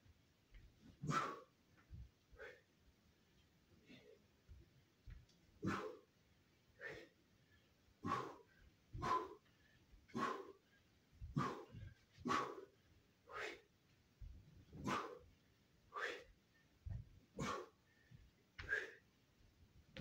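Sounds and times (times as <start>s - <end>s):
faint footwork thuds: 0.4s - 2.6s, 3.7s - 6.1s, 8.0s - 12.7s, 13.4s - 15.3s, 16.0s - 19.0s.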